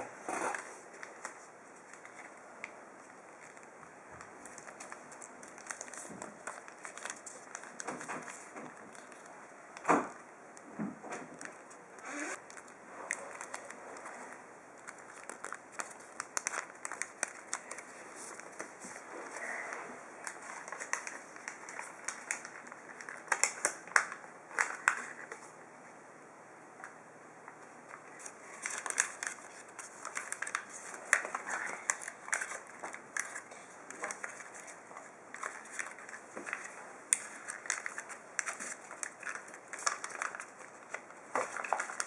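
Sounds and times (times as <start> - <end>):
paper rustling and crinkling: 0.3 - 10.2, 11.1 - 25.5, 27.8 - 42.0.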